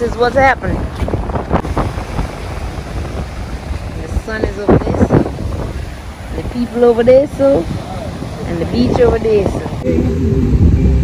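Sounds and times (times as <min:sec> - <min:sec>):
surf breaking on shore: 0:00.0 - 0:11.0
wind rumbling on microphone: 0:00.0 - 0:11.0.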